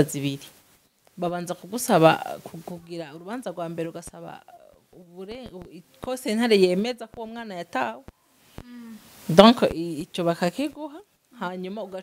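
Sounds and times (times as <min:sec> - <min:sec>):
conversation: 0:01.1 - 0:12.0.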